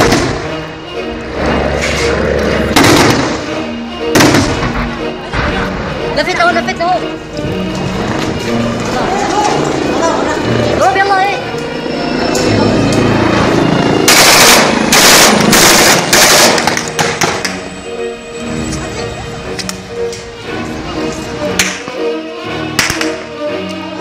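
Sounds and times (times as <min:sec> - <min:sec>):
sharp gunshot crack: 0:00.0 - 0:00.4, 0:02.8 - 0:03.4, 0:04.1 - 0:04.7, 0:14.1 - 0:17.4
background music: 0:00.0 - 0:24.0
automatic gunfire bursts: 0:14.1 - 0:16.6.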